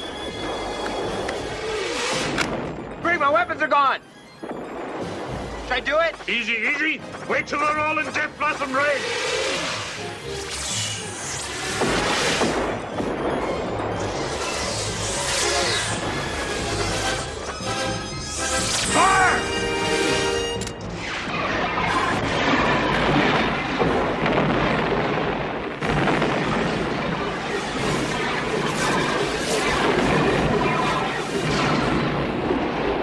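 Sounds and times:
booming explosions: 0:00.0 - 0:03.5, 0:04.2 - 0:06.4, 0:11.1 - 0:33.0
orchestral music: 0:00.0 - 0:23.5
laser fire: 0:04.2 - 0:33.0.

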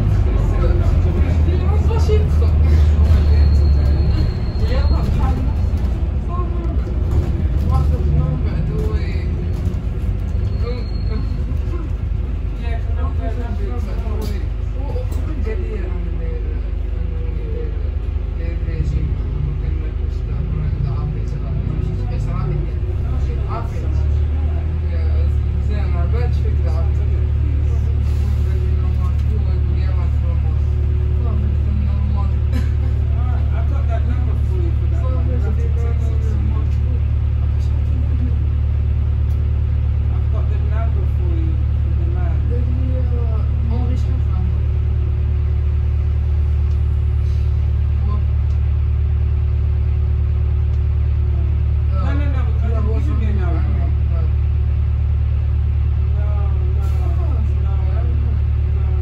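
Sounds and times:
bus diesel engine drone: 0:00.0 - 0:59.0
faint passenger voices: 0:00.0 - 0:59.0.

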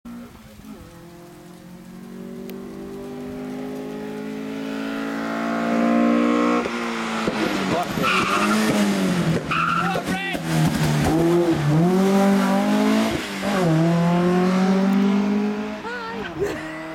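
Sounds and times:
rally car engine accelerating: 0:00.1 - 0:15.9.

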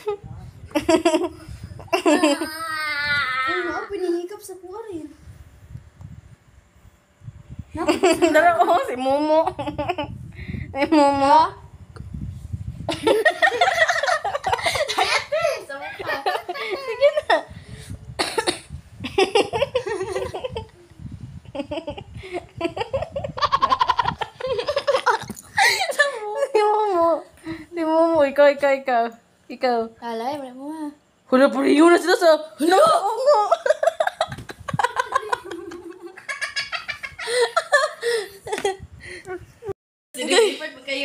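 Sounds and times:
young child giggling: 0:00.7 - 0:03.0, 0:12.9 - 0:17.6, 0:21.4 - 0:26.3, 0:33.6 - 0:38.8
person coughing: 0:18.2 - 0:18.7.

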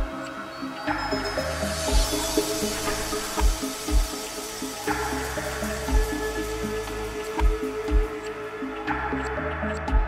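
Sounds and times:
kick drum: 0:03.4 - 0:04.1, 0:07.4 - 0:08.1.

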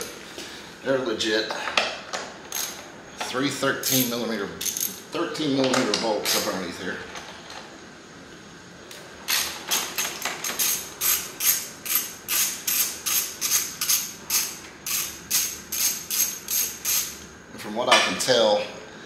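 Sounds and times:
socket ratchet clicking: 0:09.3 - 0:17.2.

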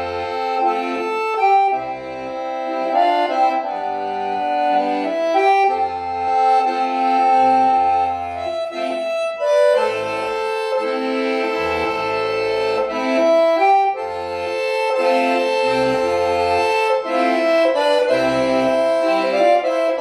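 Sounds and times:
piano accordion playing: 0:00.0 - 0:20.0.

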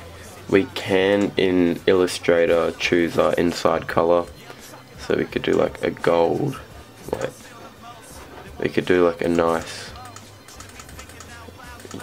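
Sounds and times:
laptop keyboard clicks: 0:10.0 - 0:12.0.

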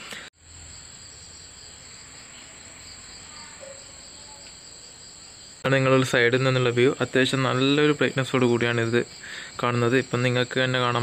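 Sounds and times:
insect chorus trilling: 0:00.1 - 0:11.0.

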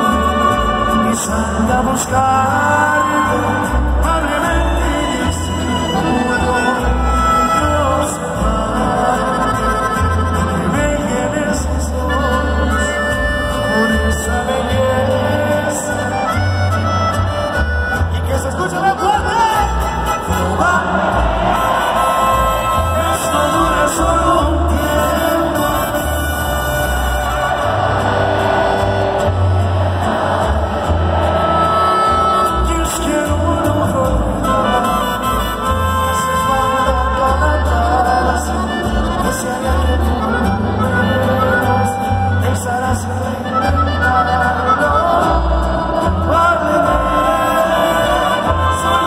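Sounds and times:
man singing: 0:00.0 - 0:29.4, 0:30.9 - 0:49.0
accordion: 0:00.0 - 0:49.0
deep bass line: 0:00.0 - 0:49.0
guitars: 0:00.0 - 0:49.0.

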